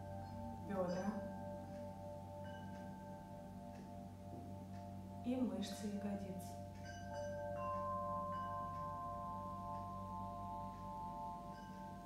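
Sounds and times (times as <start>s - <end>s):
soft meditation music: 0.0s - 12.0s.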